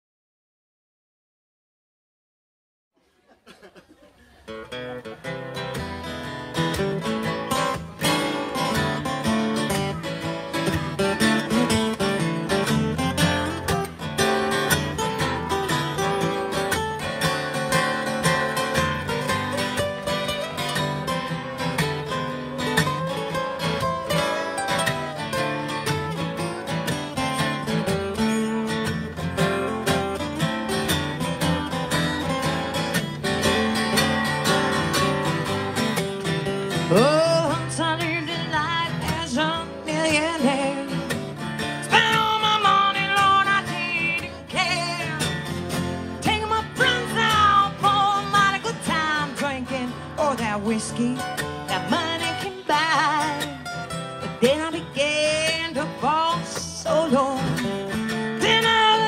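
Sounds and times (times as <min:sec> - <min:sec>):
acoustic guitars strumming blues: 0:04.4 - 0:59.0.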